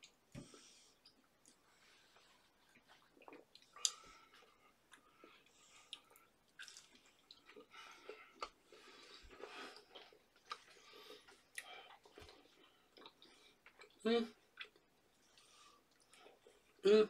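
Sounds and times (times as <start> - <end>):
chewing: 1.0 - 16.8.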